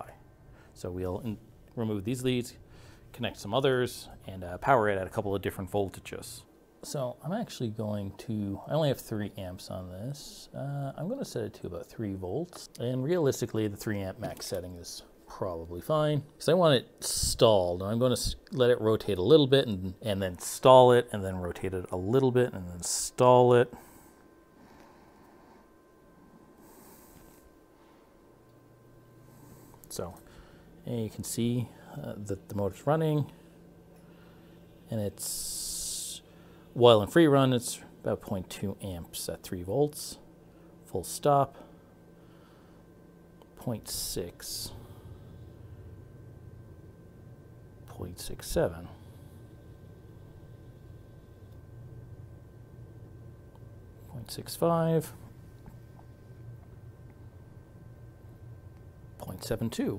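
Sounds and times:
soft hiss: 0.0 - 59.9.

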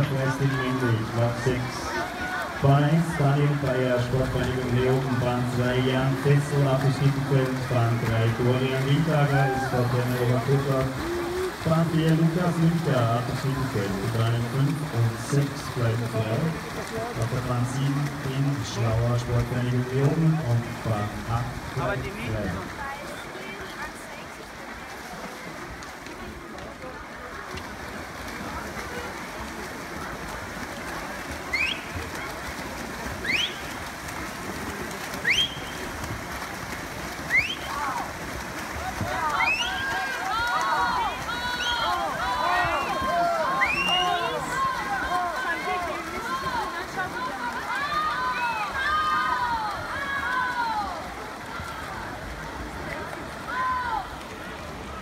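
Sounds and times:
spectators shouting and cheering: 0.0 - 22.8, 37.2 - 55.0
water splashing: 0.0 - 55.0.

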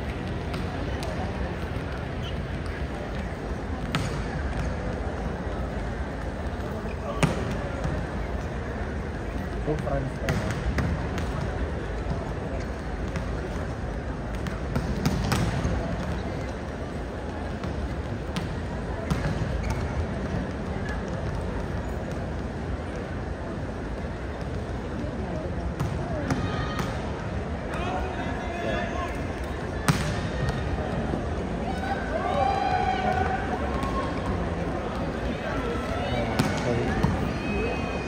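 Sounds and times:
volleyballs thudding: 0.0 - 6.4, 9.7 - 22.5, 29.4 - 31.2, 36.2 - 37.3
crowd chatter murmur: 0.0 - 38.0.

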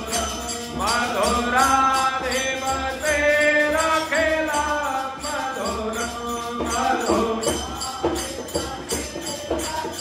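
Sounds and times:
light percussion beat: 0.0 - 10.0.

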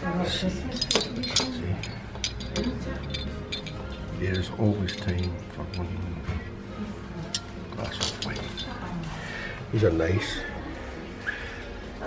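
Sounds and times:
ceramic ornaments clinking: 0.2 - 6.4, 7.1 - 9.2.

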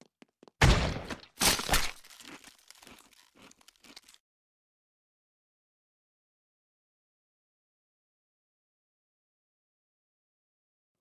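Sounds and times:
faint crunching and tearing: 1.4 - 4.2.

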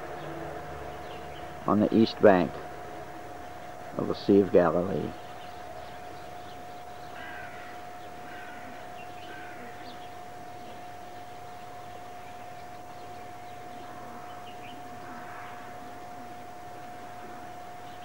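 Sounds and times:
bird calls: 0.0 - 18.0
constant high-pitched tone: 0.0 - 18.0
steady hiss: 0.0 - 18.0.

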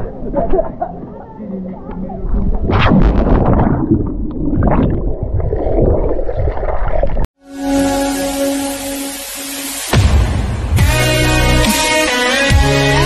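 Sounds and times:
electronic music: 7.4 - 13.0.

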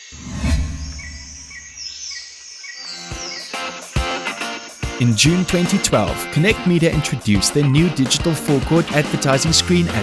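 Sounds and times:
deep rumble: 0.1 - 1.8.

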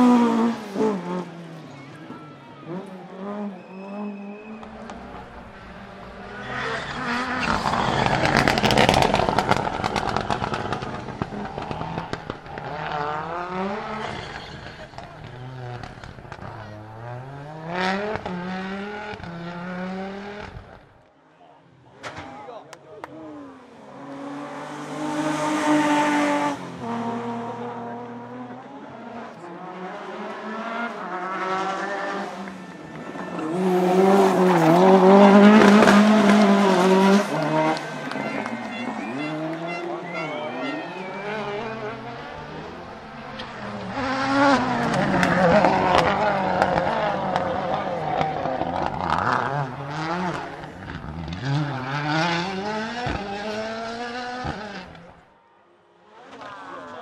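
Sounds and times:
rally cars passing at speed: 0.0 - 21.0, 23.0 - 57.0.

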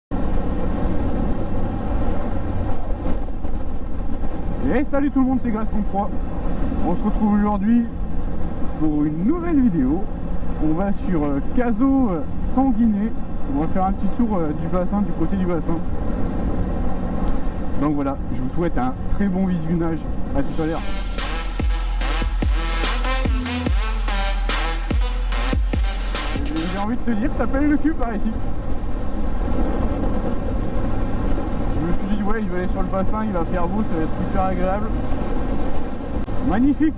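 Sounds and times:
wind rushing over microphone: 26.8 - 36.6
wind rush on microphone: 28.2 - 32.9.

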